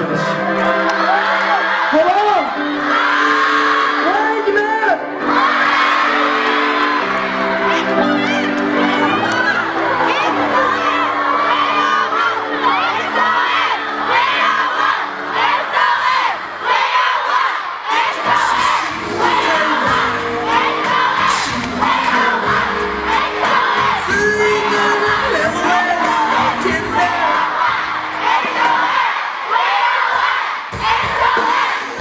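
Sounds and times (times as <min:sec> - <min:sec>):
crowd screaming and cheering: 0:00.0 - 0:32.0.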